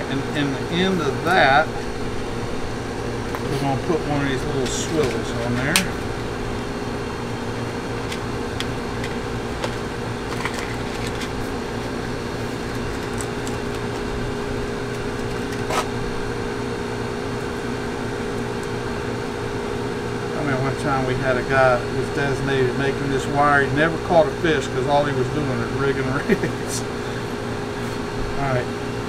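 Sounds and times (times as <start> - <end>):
machinery humming: 0.0 - 29.0.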